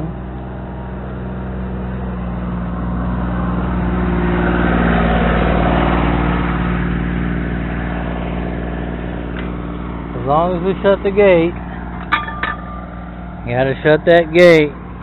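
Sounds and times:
vehicle engine passing: 0.0 - 15.0.

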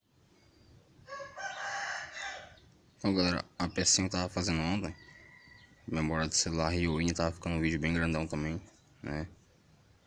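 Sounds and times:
rooster crowing: 1.0 - 2.6, 4.9 - 5.9.

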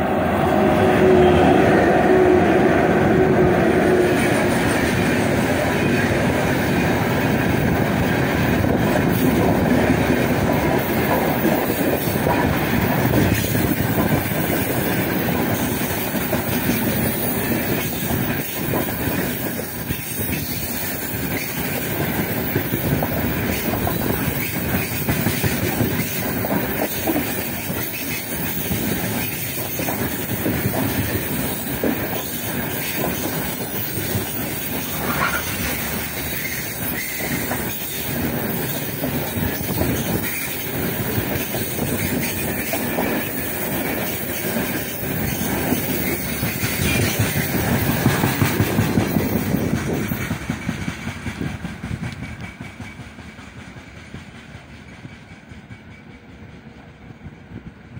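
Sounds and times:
freight train rolling past: 0.0 - 57.9
wheels clicking over rail joints: 6.2 - 53.6
wheel squeal: 34.8 - 38.0.

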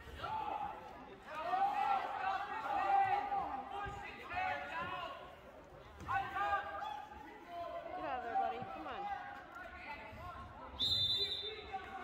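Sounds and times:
spectators' voices: 0.0 - 12.0.

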